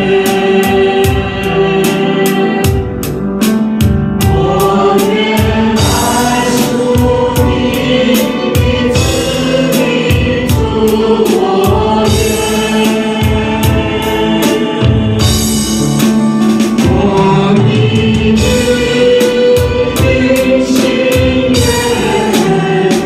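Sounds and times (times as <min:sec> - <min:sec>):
men and women singing together: 0:00.0 - 0:03.0, 0:04.2 - 0:15.7, 0:16.8 - 0:23.0
accompaniment with steady beat: 0:00.0 - 0:23.0.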